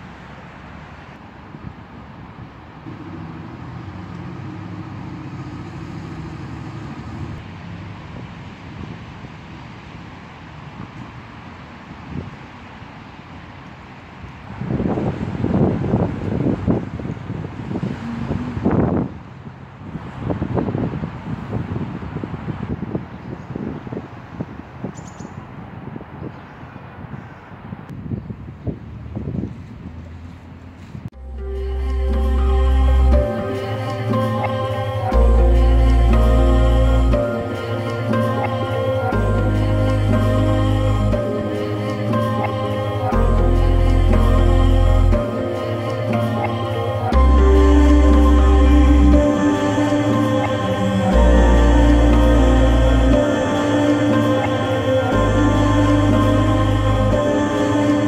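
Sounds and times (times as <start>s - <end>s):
vehicle engine hum: 0.0s - 23.1s, 26.8s - 58.0s
wind buffeting microphone: 14.2s - 31.2s.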